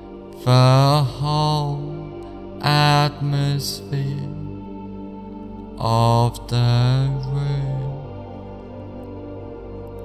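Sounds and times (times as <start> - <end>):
long chanted vocal notes: 0.0 - 10.0.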